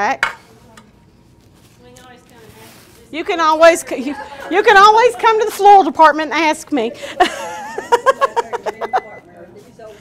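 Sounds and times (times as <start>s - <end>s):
plastic film crinkling and tearing: 1.3s - 3.6s.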